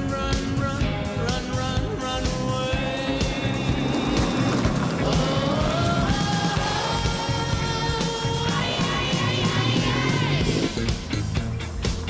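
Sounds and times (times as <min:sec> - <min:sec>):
background music: 0:00.0 - 0:12.0
car engine accelerating: 0:01.2 - 0:12.0.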